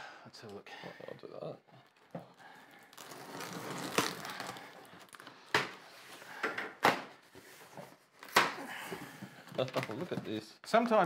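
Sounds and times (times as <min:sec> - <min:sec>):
cardboard rustling: 0:01.7 - 0:06.5
sharp cardboard cracks: 0:08.2 - 0:08.6.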